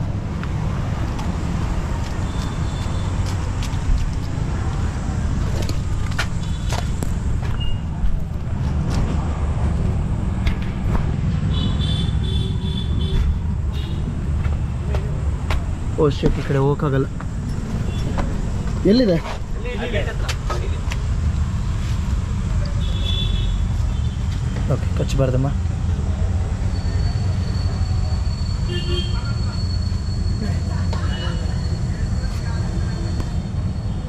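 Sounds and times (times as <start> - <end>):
vehicle engine humming: 0.0 - 34.0.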